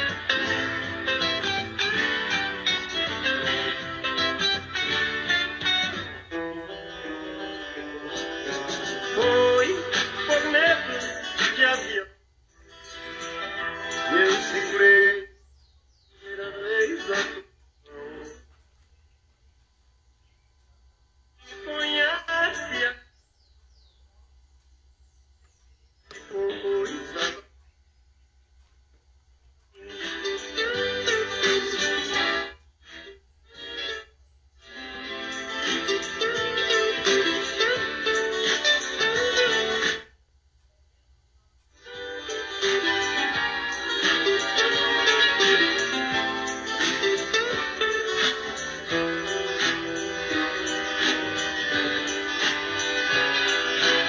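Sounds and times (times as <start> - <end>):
song with vocals from radio speaker: 0.0 - 19.0, 21.4 - 24.0, 25.6 - 27.8, 29.7 - 40.2, 41.6 - 54.0.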